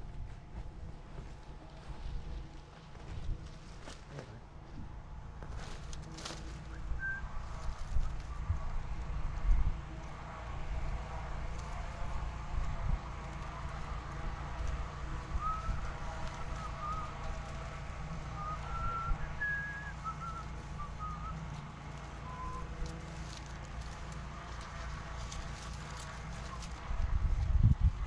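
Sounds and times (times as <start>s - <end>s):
cloth rustling on palm leaves: 0.0s - 9.3s, 10.2s - 28.0s
wind rumble on microphone: 0.0s - 28.0s.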